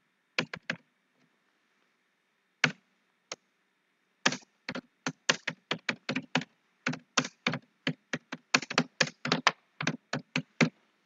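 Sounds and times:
typing on computer keyboard: 0.4s - 0.8s, 4.3s - 10.7s.

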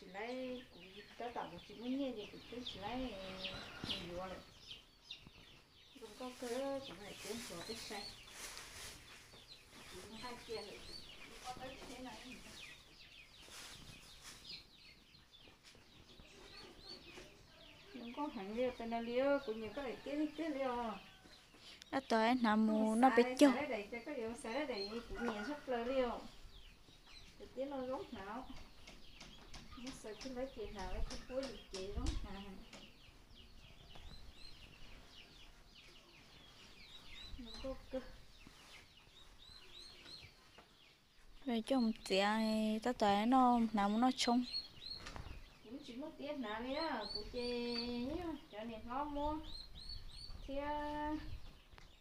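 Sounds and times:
birds chirping: 0.0s - 52.0s.

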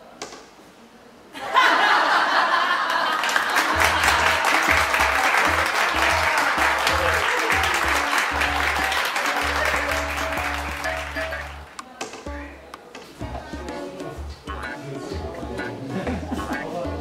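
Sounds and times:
crowd applause: 1.9s - 11.8s
music with stepping bass line: 3.7s - 17.0s.

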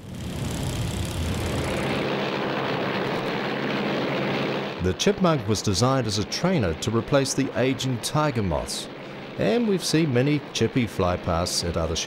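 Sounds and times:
propeller aircraft engine droning: 0.0s - 12.0s.

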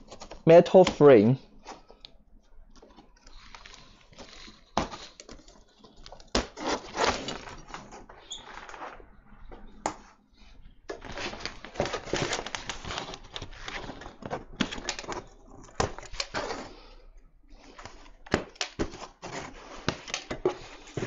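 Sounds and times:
rustling scrapes: 3.0s - 9.2s, 19.0s - 21.0s.

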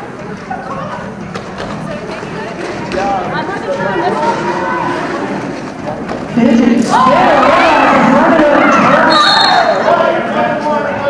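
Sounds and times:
roller skates rolling on concrete: 0.2s - 6.5s
voices calling and shouting: 2.7s - 11.0s.

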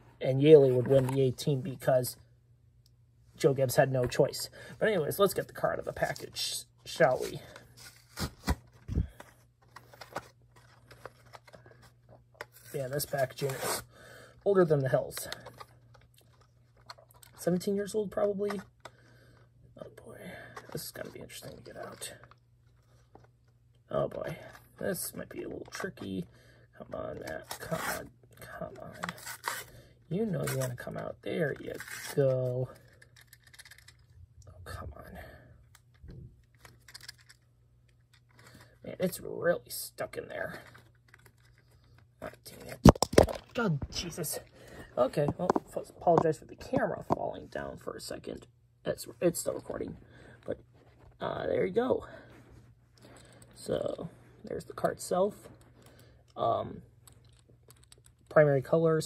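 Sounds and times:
packaging clicks and scratches: 32.8s - 34.1s, 36.5s - 37.4s.

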